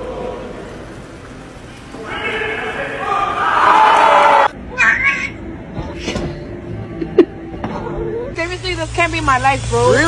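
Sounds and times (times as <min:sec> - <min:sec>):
indoor crowd hubbub: 0:00.0 - 0:10.0.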